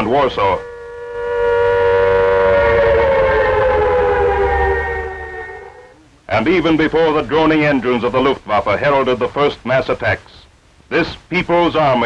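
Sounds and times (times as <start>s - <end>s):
air-raid siren wailing: 0.0s - 6.1s.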